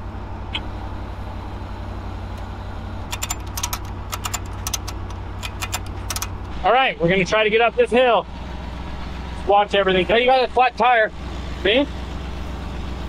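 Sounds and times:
truck engine idling: 0:00.0 - 0:13.0
sharp clicks: 0:03.1 - 0:06.6.

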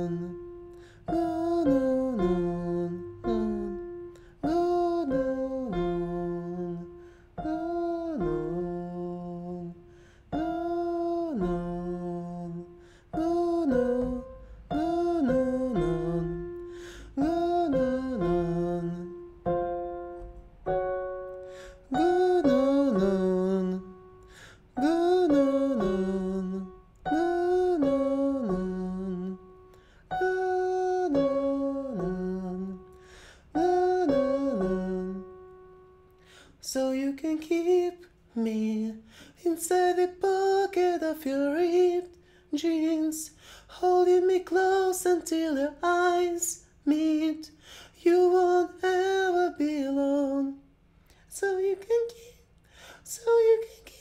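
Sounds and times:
man singing vocal warm-up: 0:00.0 - 0:19.9, 0:21.3 - 0:35.5, 0:36.3 - 0:50.7, 0:51.3 - 0:52.4, 0:53.0 - 0:54.0.

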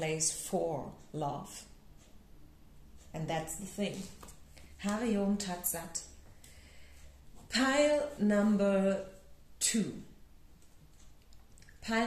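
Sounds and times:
woman speaking: 0:00.0 - 0:01.7, 0:03.1 - 0:04.2, 0:04.8 - 0:06.2, 0:07.5 - 0:10.2, 0:11.7 - 0:12.0.

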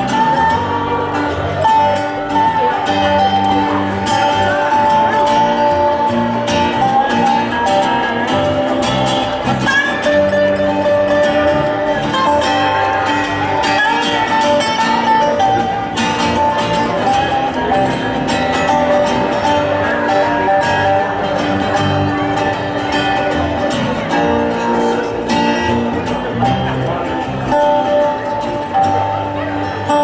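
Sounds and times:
acoustic string band playing: 0:00.0 - 0:30.0
picked acoustic guitar: 0:00.0 - 0:30.0
upright bass: 0:00.0 - 0:30.0.

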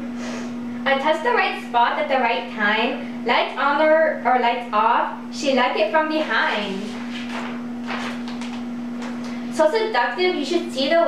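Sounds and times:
steady low hum: 0:00.0 - 0:11.0
paper sheets rustling: 0:06.2 - 0:09.4.

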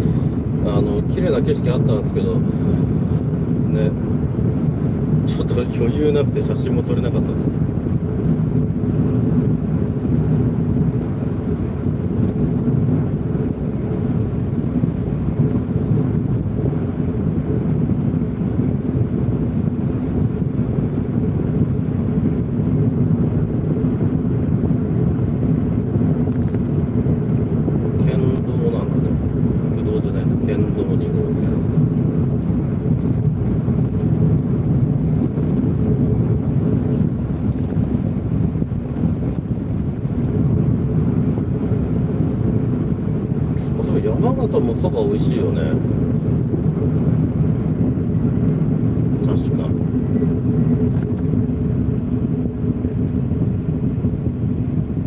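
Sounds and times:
car engine: 0:00.0 - 0:55.0
road rumble: 0:00.0 - 0:55.0.

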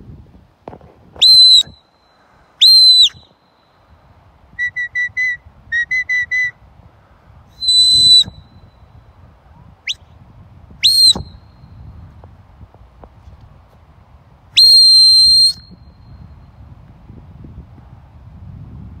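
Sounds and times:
shepherd's whistled commands: 0:04.6 - 0:06.6, 0:07.6 - 0:08.3, 0:10.8 - 0:11.3.

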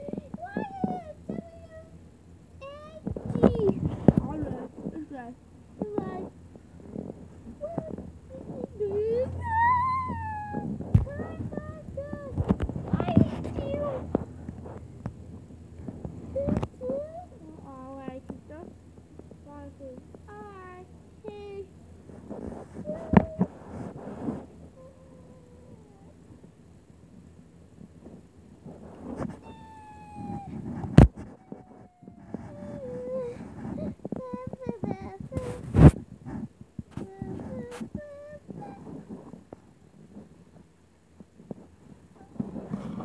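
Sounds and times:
squeaky meow-like vocal sounds: 0:29.4 - 0:30.7.

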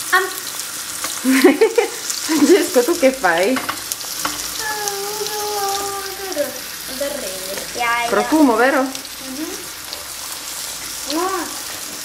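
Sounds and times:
meat sizzling in a frying pan: 0:00.0 - 0:12.0
utensil turning food in pan: 0:00.0 - 0:12.0.

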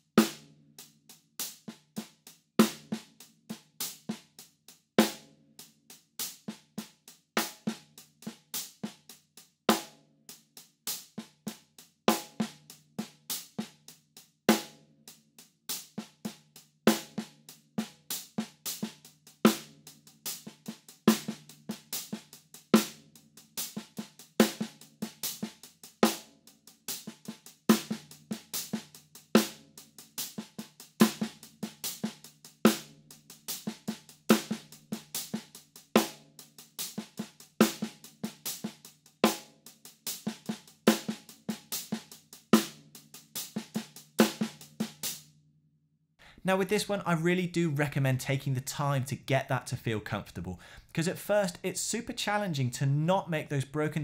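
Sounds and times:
snare drum backbeats: 0:46.3 - 0:54.0
snare ghost notes: 0:46.4 - 0:54.0.

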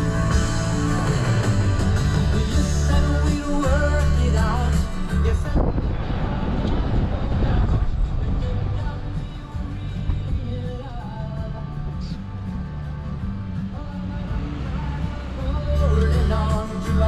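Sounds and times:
rock music on car radio: 0:00.0 - 0:17.0.

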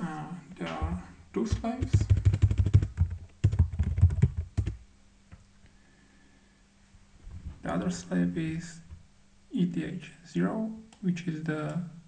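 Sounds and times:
fast typing on computer keyboard: 0:01.5 - 0:04.8.

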